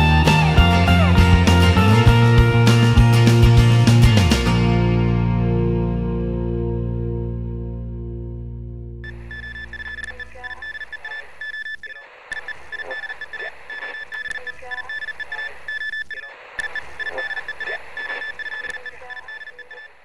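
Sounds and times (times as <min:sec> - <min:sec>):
rapid alarm-like beeping: 0:09.0 - 0:20.0.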